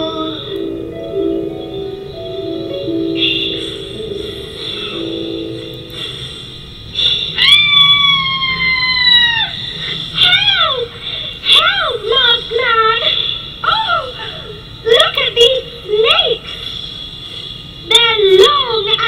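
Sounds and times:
faint music: 0.0s - 19.0s
high-pitched vocal cries: 7.2s - 14.7s.

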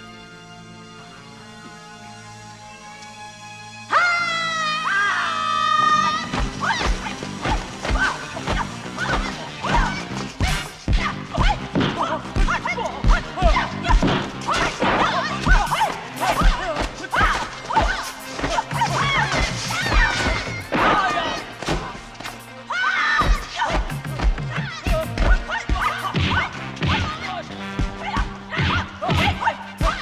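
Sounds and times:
action music: 0.0s - 30.0s
background film score: 0.0s - 30.0s
punch and kick impacts: 13.9s - 15.7s.

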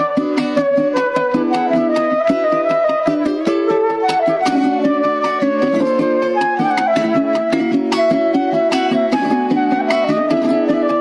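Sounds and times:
flute melody: 0.0s - 11.0s
strummed small guitar: 0.0s - 11.0s.

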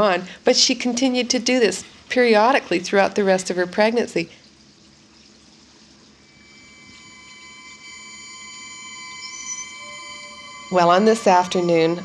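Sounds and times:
cluster of steady high tones: 6.0s - 12.0s.

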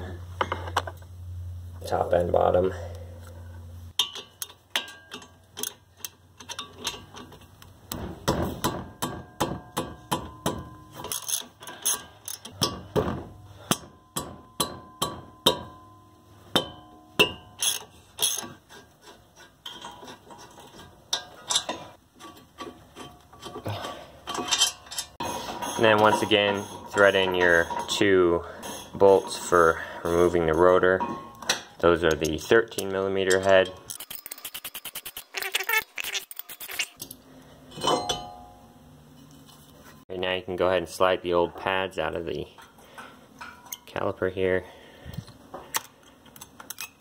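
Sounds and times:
metal tools clinking: 4.0s - 7.6s, 10.3s - 12.9s, 17.2s - 18.6s, 19.6s - 38.5s, 45.7s - 47.0s
ratchet wrench clicking: 33.9s - 37.0s.

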